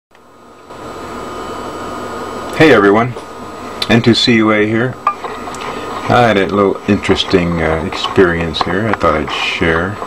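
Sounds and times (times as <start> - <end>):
equipment hiss and hum: 0.1 - 10.0
faint high whine: 0.1 - 10.0.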